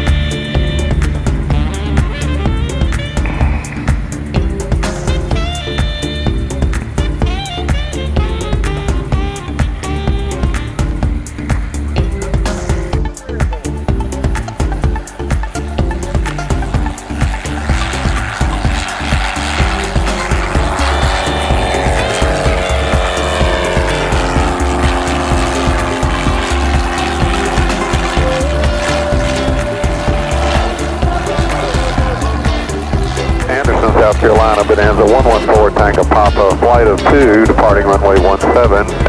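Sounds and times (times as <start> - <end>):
background music with steady beat: 0.0 - 39.0
light aircraft engine and propeller: 0.0 - 39.0.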